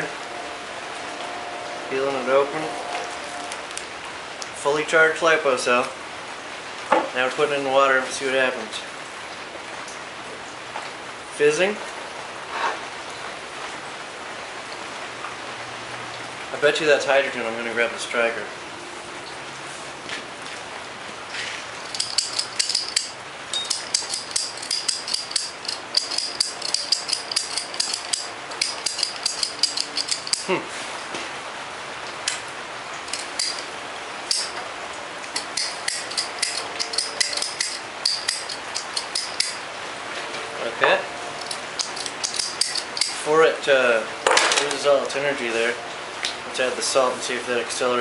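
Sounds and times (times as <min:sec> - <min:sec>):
flint striker clicking: 0:21.9 - 0:30.5, 0:33.1 - 0:33.7, 0:34.3 - 0:34.6, 0:35.3 - 0:39.6, 0:41.4 - 0:43.2.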